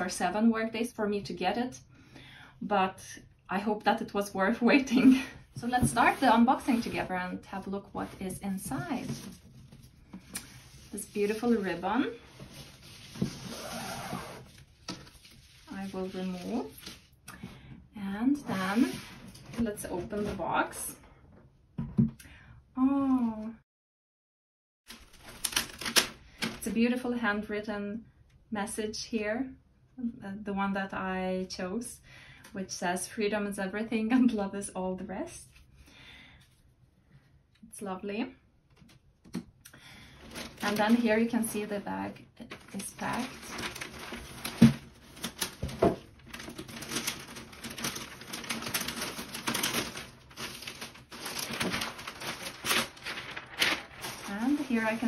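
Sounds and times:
tissue paper rustling and crinkling: 0:04.7 - 0:17.2, 0:18.5 - 0:20.4, 0:24.9 - 0:26.6, 0:40.1 - 0:55.0.

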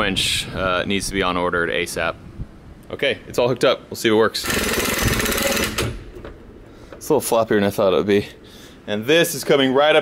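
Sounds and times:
hand-crank winch ratcheting: 0:04.4 - 0:06.3.

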